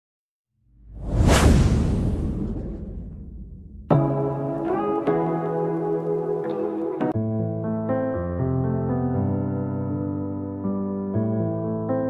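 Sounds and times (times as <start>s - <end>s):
deep low rumble: 0.8s - 4.0s
whoosh: 0.8s - 4.1s.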